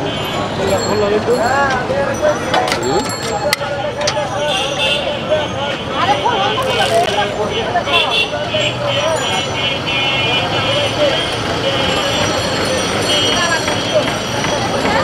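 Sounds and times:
street traffic: 0:00.0 - 0:15.0
voices chattering: 0:00.0 - 0:15.0.

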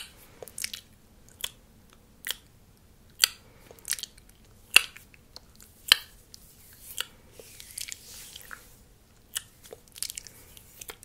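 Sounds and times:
wet mouth clicks: 0:00.0 - 0:01.6, 0:02.2 - 0:02.5, 0:09.2 - 0:11.0.

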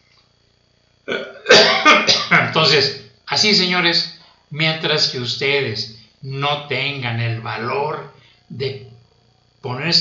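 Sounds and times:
man coughing: 0:01.1 - 0:02.6.

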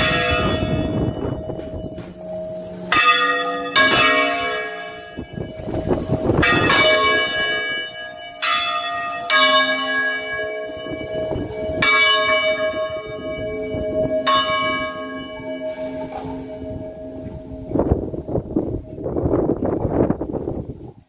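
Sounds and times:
church bells ringing: 0:00.0 - 0:19.9.

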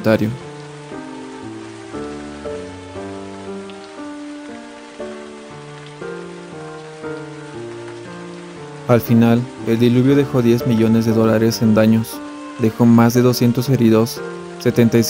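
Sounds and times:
rain hiss: 0:00.0 - 0:15.0
slow music of held notes: 0:00.0 - 0:15.0.

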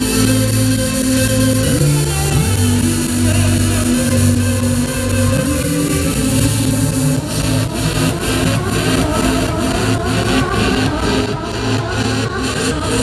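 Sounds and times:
electronic dance music: 0:00.0 - 0:13.0.

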